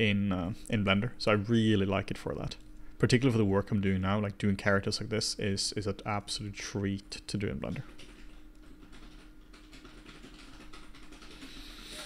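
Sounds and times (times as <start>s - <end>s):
low electrical hum: 0.0s - 12.0s
rapid keyboard typing: 7.4s - 12.0s.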